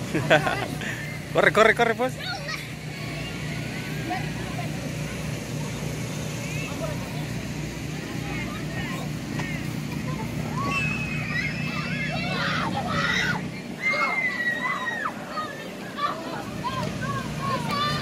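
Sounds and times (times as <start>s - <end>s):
electric blower fan humming: 0.0s - 18.0s
children shouting: 9.4s - 18.0s.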